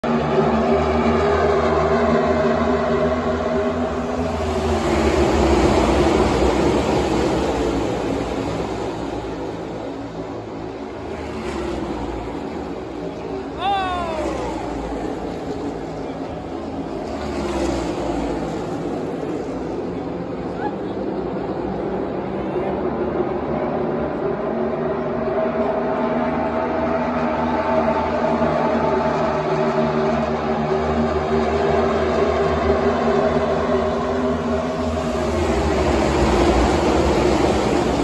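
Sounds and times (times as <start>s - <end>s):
racing car engines droning: 0.0s - 38.0s.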